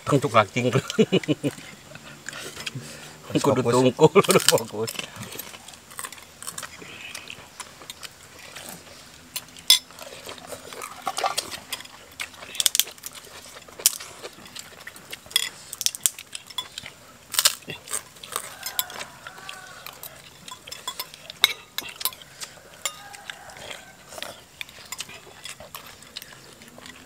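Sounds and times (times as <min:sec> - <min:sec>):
spoons clinking against bowls: 0:09.4 - 0:09.9, 0:15.4 - 0:16.9, 0:18.6 - 0:23.4.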